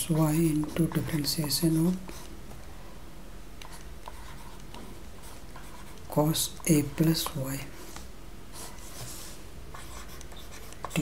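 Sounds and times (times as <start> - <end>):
faint low hum: 0.0 - 11.0
stylus scratching on tablet screen: 0.1 - 2.3, 3.6 - 7.4, 8.5 - 11.0.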